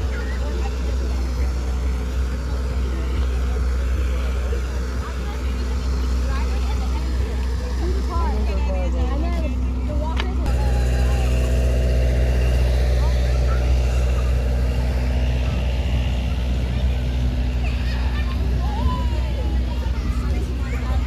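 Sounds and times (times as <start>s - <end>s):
mechanical hum: 0.0s - 21.0s
people talking: 0.0s - 21.0s
steady low rumble: 0.0s - 21.0s.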